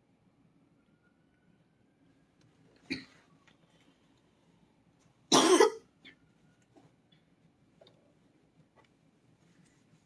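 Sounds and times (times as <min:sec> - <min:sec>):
person coughing: 0:02.9 - 0:03.2, 0:05.3 - 0:05.8.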